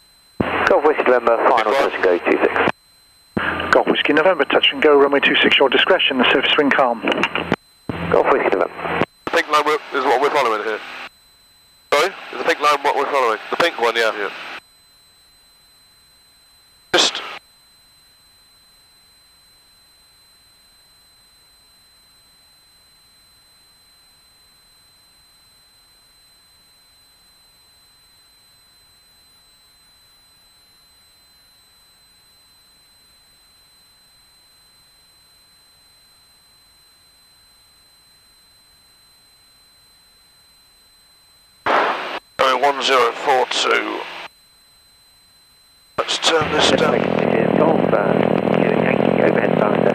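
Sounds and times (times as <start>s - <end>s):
radio sound burst: 0.4s - 2.7s, 3.4s - 11.1s, 11.9s - 14.6s, 17.0s - 17.4s, 41.7s - 44.3s, 46.0s - 49.9s
radio hiss: 0.4s - 2.8s, 3.4s - 11.1s, 11.9s - 14.6s, 16.9s - 17.4s, 41.7s - 44.3s, 46.0s - 49.9s
high-pitched electronic whine: 0.4s - 28.3s, 31.8s - 49.9s.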